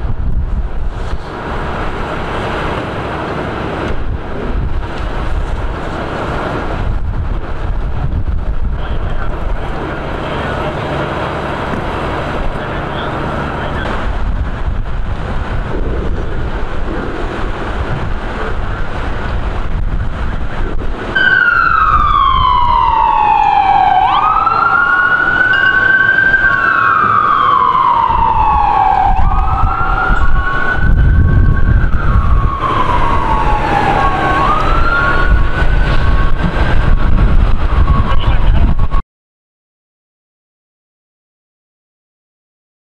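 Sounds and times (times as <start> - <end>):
low rumble: 0.0 - 39.0
wind on microphone: 0.0 - 39.0
emergency vehicle siren wailing: 0.5 - 7.8, 8.5 - 39.0.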